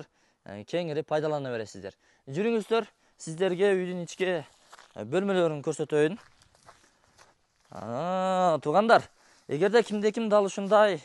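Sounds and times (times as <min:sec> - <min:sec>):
man talking: 0:00.0 - 0:06.3, 0:07.7 - 0:11.0
footsteps through dry grass: 0:02.4 - 0:11.0.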